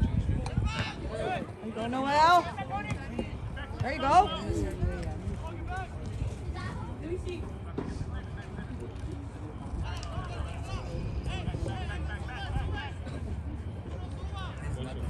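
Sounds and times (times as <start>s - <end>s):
players and spectators shouting: 0.5s - 6.0s, 9.8s - 13.4s.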